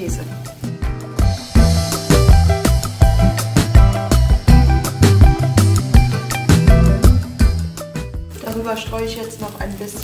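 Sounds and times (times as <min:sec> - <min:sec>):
music with bass and drums: 0:00.0 - 0:09.8.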